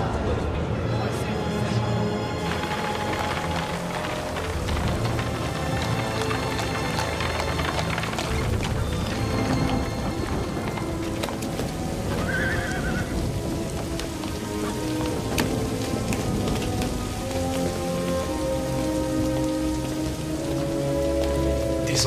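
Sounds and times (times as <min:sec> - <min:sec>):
heavy rainfall: 0:00.0 - 0:22.0
orchestral film score: 0:00.0 - 0:22.0.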